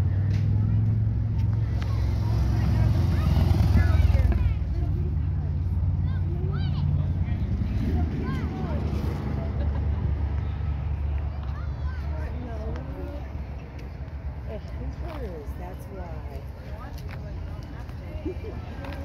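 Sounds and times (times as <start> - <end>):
faint voices: 0.0 - 19.0.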